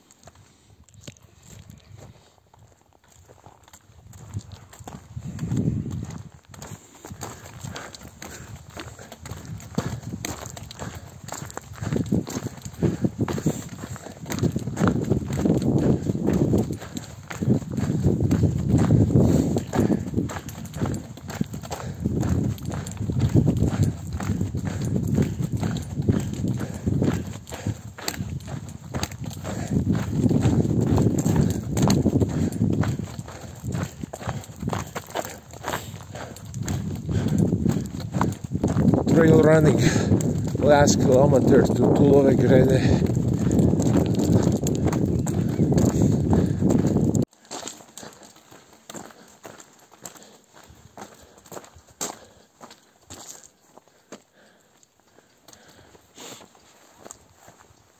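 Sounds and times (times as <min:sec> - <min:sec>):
footsteps on gravel: 0:00.0 - 0:57.9.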